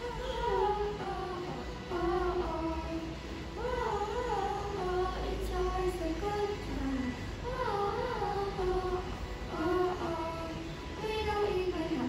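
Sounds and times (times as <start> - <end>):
girls singing into microphones: 0.0 - 12.0.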